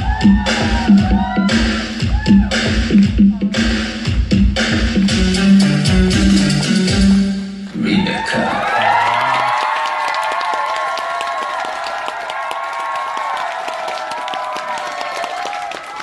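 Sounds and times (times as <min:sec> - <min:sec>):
crowd cheering and screaming: 0:00.0 - 0:02.6, 0:07.8 - 0:16.0
audience applause: 0:07.7 - 0:16.0.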